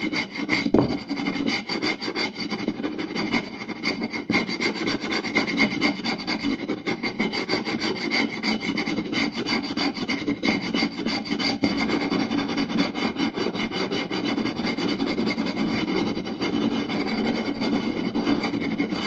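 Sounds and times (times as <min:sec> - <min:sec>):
fingers scratching and tapping wood: 0:00.8 - 0:01.8.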